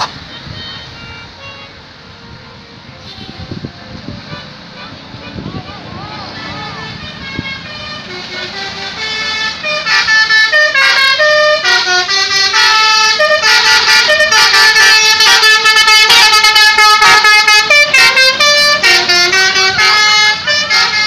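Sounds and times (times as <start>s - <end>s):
bus musical horn tune: 0.0s - 5.9s, 6.7s - 21.0s.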